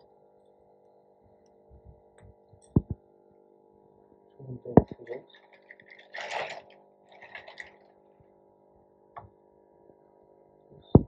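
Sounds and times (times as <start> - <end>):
short splashes: 4.9 - 7.9
water sloshing in a tray: 4.9 - 8.0.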